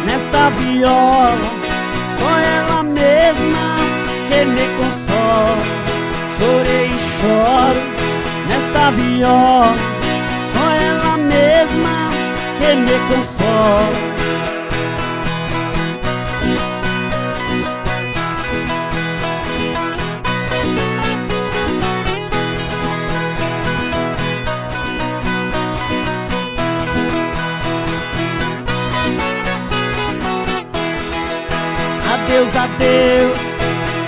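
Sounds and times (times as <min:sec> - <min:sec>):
two guitars plucked and strummed: 0:00.0 - 0:34.0.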